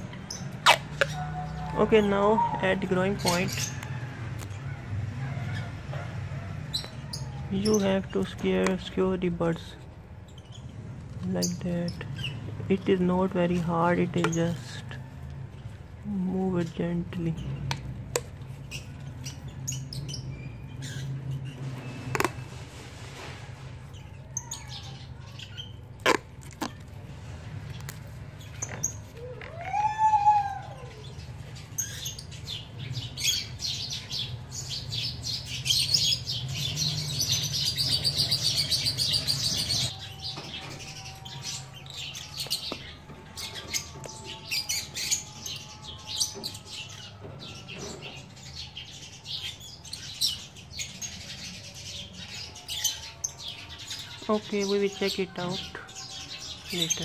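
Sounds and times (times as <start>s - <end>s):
small birds chirping: 0.0s - 57.0s.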